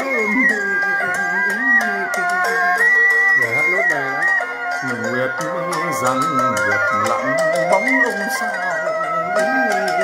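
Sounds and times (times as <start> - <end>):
man singing folk opera: 0.0 - 2.8, 3.4 - 8.6
traditional instruments playing melody: 0.0 - 10.0.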